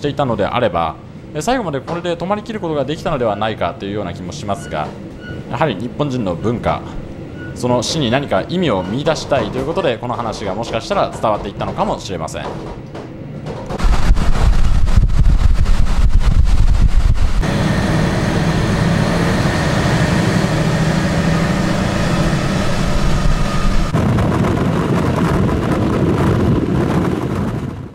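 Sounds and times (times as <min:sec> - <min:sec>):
train engine and wheels rumbling: 0:00.0 - 0:27.9
rail clicks: 0:01.4 - 0:24.0
faint whine: 0:13.8 - 0:24.0.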